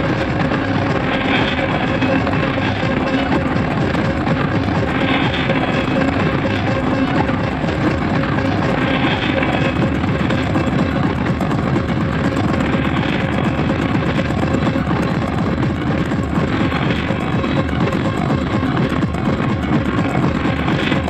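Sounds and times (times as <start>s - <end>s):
droning electronic tones: 0.0s - 21.0s
fast dense electronic drums: 0.0s - 21.0s.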